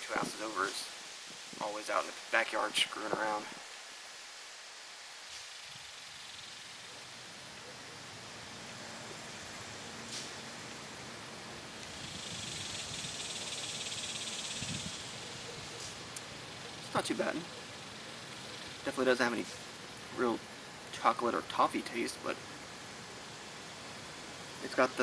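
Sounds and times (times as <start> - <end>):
steady outdoor hiss: 0.0 - 25.0
high-pitched insect buzz: 5.1 - 7.4, 11.6 - 19.8.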